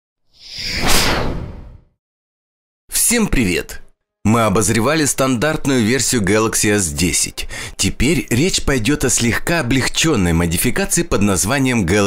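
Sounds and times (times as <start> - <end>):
whoosh: 0.4 - 1.9.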